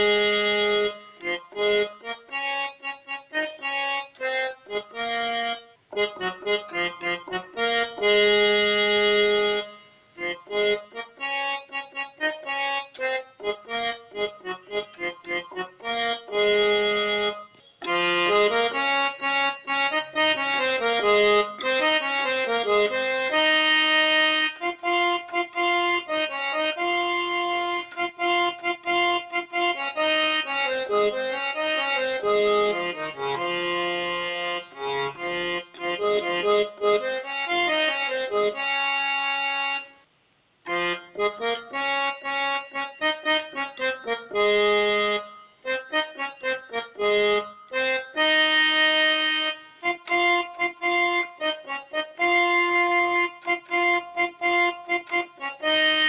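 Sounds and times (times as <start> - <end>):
electronic keyboard melody: 0.0 - 56.0.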